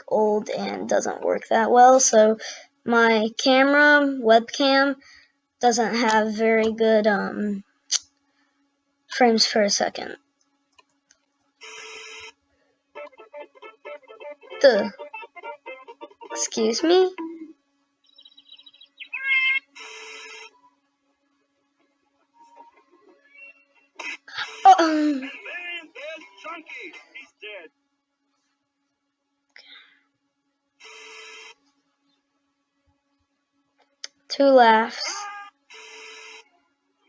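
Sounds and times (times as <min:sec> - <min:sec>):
noisy rasping sound: 0:11.6 - 0:12.3, 0:19.6 - 0:20.6, 0:35.6 - 0:36.5
crow calling: 0:18.2 - 0:20.5.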